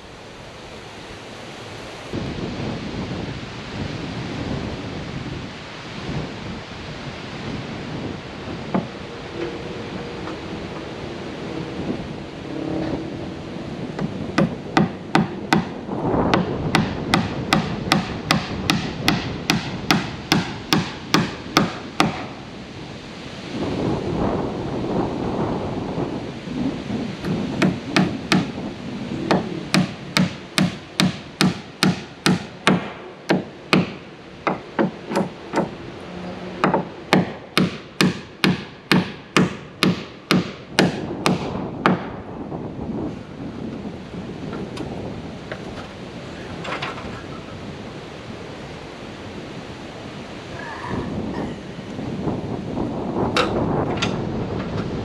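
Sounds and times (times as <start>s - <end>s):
wind on microphone: 0.0s - 55.0s
hammer driving nails into wood: 16.4s - 22.3s, 27.6s - 28.5s, 29.3s - 35.7s, 36.6s - 42.1s.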